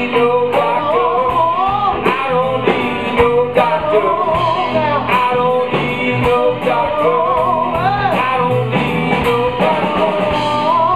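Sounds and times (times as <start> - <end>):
bass guitar: 0.0 - 10.9
drum kit beat: 0.0 - 10.9
electric guitar: 0.0 - 10.9
man singing: 0.0 - 10.9.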